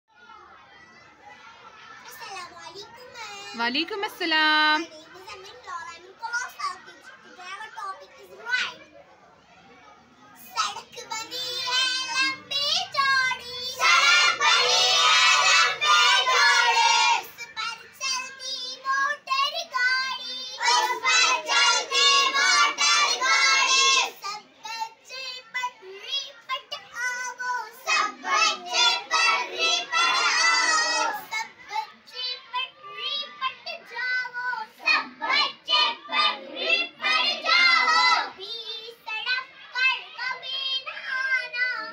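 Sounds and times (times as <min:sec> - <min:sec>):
young children talking: 0:00.1 - 0:41.9.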